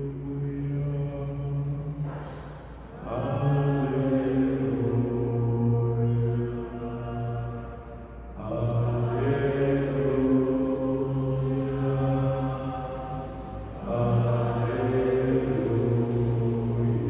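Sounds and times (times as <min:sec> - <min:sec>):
devotional chant music: 0:00.0 - 0:17.0.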